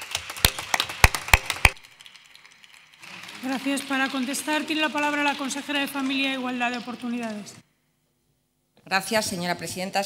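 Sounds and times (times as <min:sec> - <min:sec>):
people clapping: 0:00.0 - 0:07.6
sharp loud claps: 0:00.0 - 0:07.6.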